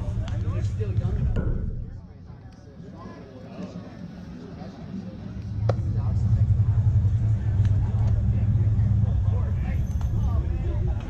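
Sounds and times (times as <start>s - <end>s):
loud low rumble: 0.0s - 2.3s, 5.4s - 11.0s.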